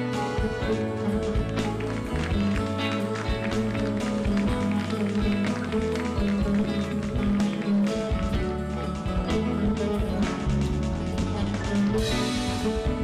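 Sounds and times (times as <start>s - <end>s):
drum kit beat: 0.0s - 13.0s
violin: 0.0s - 13.0s.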